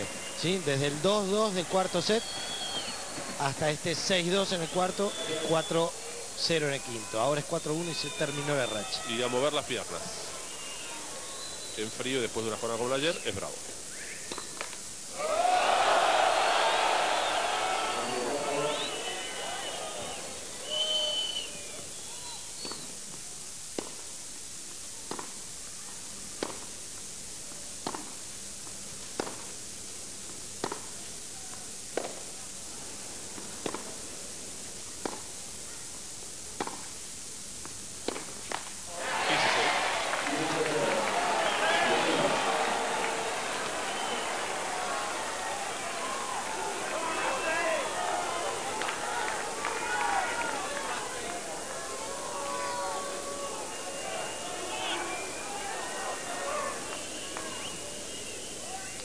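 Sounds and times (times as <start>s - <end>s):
hushed stadium crowd: 0.0s - 23.0s, 38.8s - 59.0s
crowd roar: 15.1s - 21.5s, 38.9s - 59.0s
tennis ball strikes: 25.1s - 25.3s, 27.8s - 28.2s, 29.2s - 29.5s, 30.6s - 30.9s, 35.0s - 35.2s, 36.6s - 36.9s, 38.0s - 38.7s.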